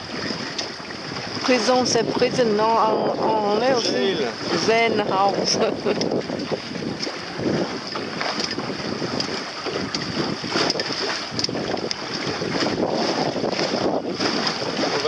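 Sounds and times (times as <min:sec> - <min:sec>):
choppy water slapping boat: 0:00.0 - 0:15.0
wind buffeting microphone: 0:00.0 - 0:15.0.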